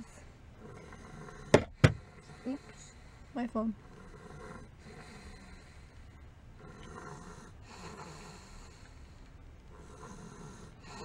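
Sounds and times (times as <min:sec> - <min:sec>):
toddler snoring softly: 0:00.0 - 0:06.0, 0:06.6 - 0:09.0, 0:09.7 - 0:11.0.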